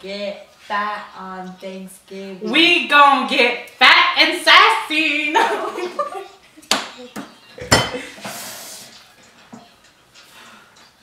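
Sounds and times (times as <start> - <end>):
objects knocking and clattering: 6.8 - 8.4
short hiss: 8.2 - 9.0.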